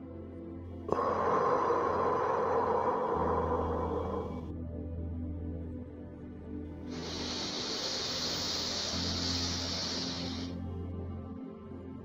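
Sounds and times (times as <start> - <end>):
soft ambient music: 0.0 - 12.0
slow deep out-breath: 0.8 - 4.6, 6.9 - 10.7.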